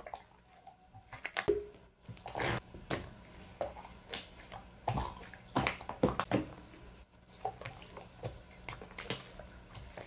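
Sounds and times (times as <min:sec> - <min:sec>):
slime squishing: 0:02.1 - 0:10.0.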